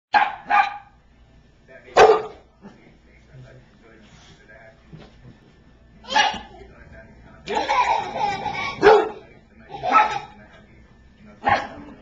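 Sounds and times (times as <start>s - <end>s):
dog barking: 0.1s - 1.0s, 2.0s - 2.4s, 8.8s - 9.2s, 9.8s - 10.4s, 11.4s - 11.8s.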